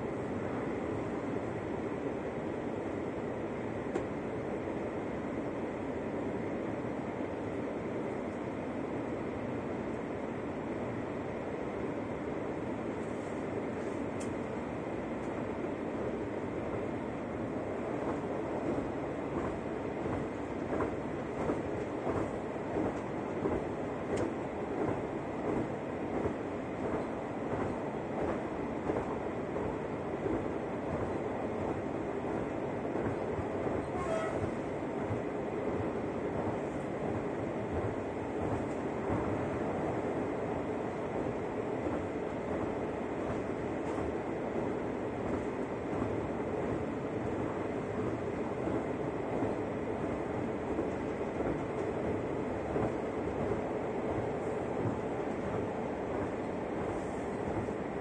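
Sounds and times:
railcar rumble and hum: 0:00.0 - 0:58.0
high squeak: 0:33.9 - 0:34.5.

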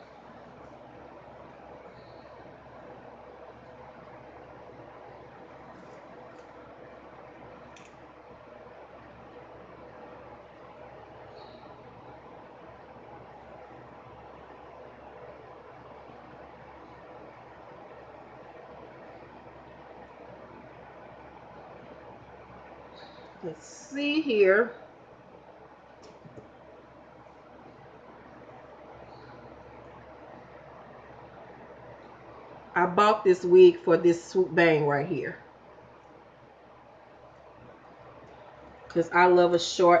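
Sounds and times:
faint room hiss: 0:00.0 - 0:40.0.

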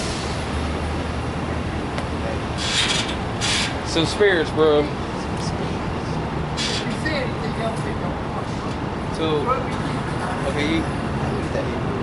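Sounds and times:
city street traffic: 0:00.0 - 0:12.0
short hissing bursts: 0:02.6 - 0:03.8, 0:06.6 - 0:06.9.

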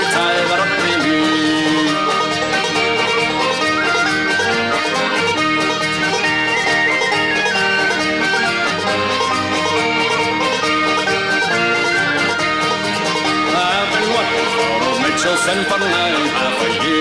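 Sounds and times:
accordion melody: 0:00.0 - 0:17.0
plucked banjo and guitar: 0:00.0 - 0:17.0.

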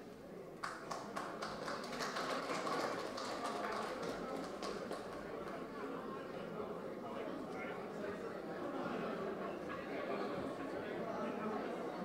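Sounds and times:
audience clapping: 0:00.6 - 0:05.6.

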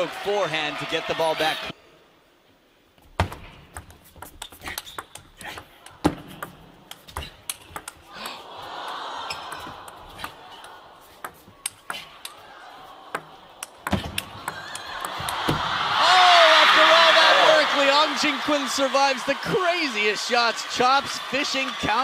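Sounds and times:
table tennis ball clicking: 0:03.7 - 0:08.4, 0:09.4 - 0:12.4, 0:13.1 - 0:15.4
crowd noise: 0:05.6 - 0:22.0.

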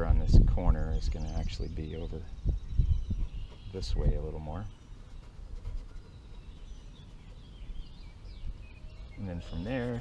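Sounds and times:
distant birds chirping: 0:00.0 - 0:10.0
wind on microphone: 0:00.0 - 0:10.0.

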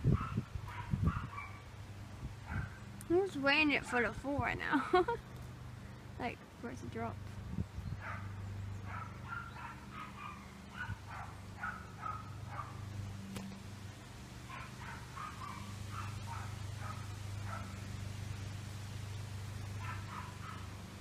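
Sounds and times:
dog barking: 0:00.1 - 0:01.6, 0:02.5 - 0:02.8, 0:08.0 - 0:08.3, 0:08.9 - 0:12.8, 0:14.5 - 0:17.8, 0:19.8 - 0:20.7.

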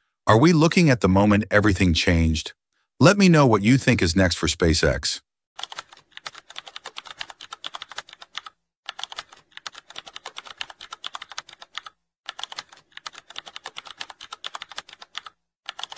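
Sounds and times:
computer keyboard typing: 0:05.6 - 0:15.9.

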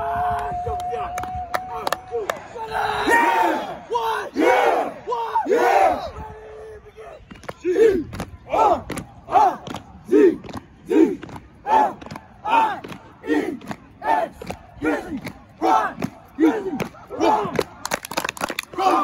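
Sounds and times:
men shouting in rhythm: 0:07.7 - 0:17.7, 0:18.7 - 0:19.0.

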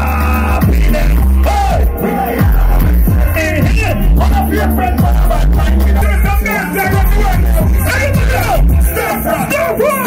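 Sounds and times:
loud live music with heavy bass: 0:00.0 - 0:10.0.

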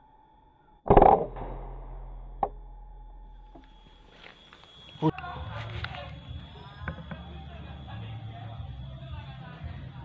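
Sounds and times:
air rifle shot: 0:00.9 - 0:03.0.

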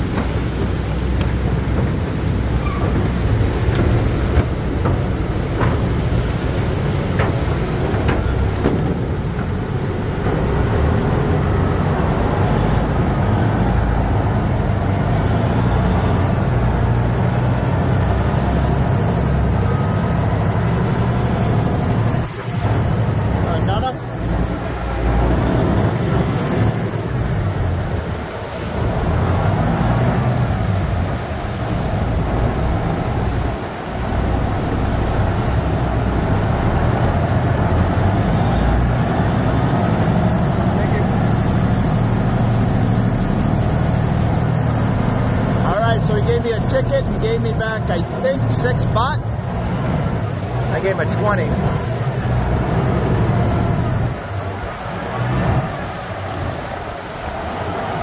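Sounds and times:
boat engine running: 0:00.0 - 0:58.0
water rushing past hull: 0:00.0 - 0:58.0.

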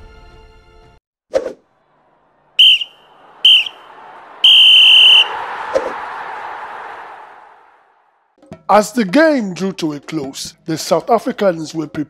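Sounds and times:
sports whistle blowing: 0:02.6 - 0:05.4.

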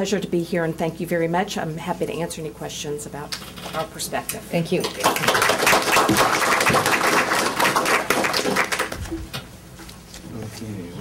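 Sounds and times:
audience applause: 0:05.0 - 0:09.0.

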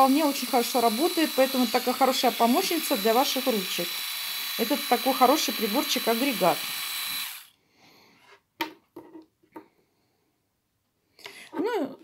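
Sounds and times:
electric manicure motor whining: 0:00.0 - 0:07.5.

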